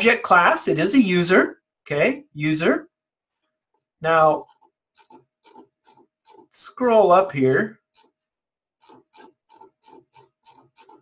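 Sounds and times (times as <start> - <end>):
mouse scroll wheel ratcheting: 4.4 - 6.6, 7.8 - 8.2, 8.8 - 11.0.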